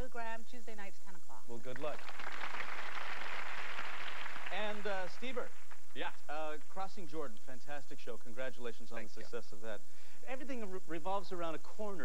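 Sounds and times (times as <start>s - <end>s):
audience applauding: 1.7s - 6.8s.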